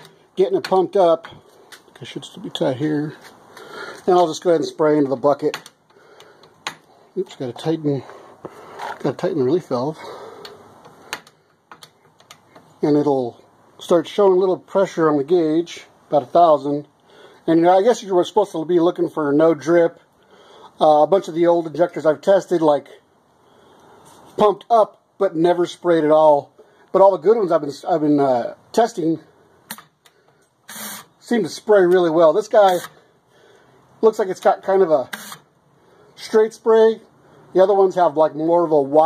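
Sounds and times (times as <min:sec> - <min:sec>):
man speaking: 0:00.0 - 0:05.6, 0:07.1 - 0:10.4, 0:12.8 - 0:20.0, 0:20.8 - 0:23.1, 0:24.4 - 0:29.3, 0:31.2 - 0:33.0, 0:34.0 - 0:35.2, 0:36.2 - 0:39.0.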